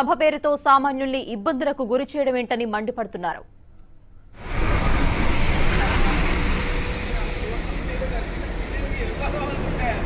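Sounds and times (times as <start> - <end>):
low traffic rumble: 4.4 - 10.0.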